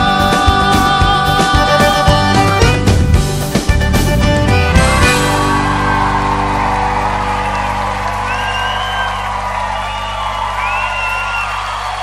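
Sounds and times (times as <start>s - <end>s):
live band final chord: 0.0s - 10.3s
audience cheering: 4.8s - 12.0s
high whistle: 7.4s - 12.0s.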